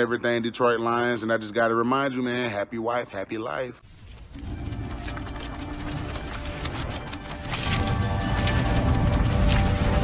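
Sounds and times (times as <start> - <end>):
rapid clicks and crackles: 3.9 - 10.0.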